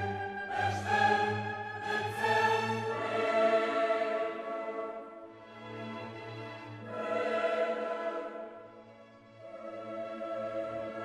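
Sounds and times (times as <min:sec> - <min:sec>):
choral singing: 0:00.0 - 0:11.0.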